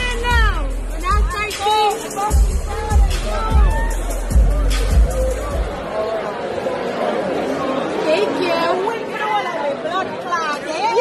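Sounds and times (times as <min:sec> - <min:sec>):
overlapping chatter of people: 0:00.0 - 0:11.0.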